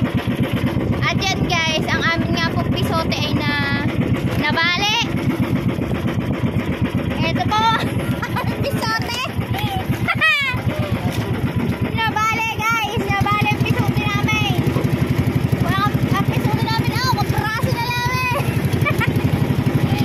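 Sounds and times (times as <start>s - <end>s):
boat engine running: 0.0s - 20.0s
voices calling out: 7.0s - 20.0s.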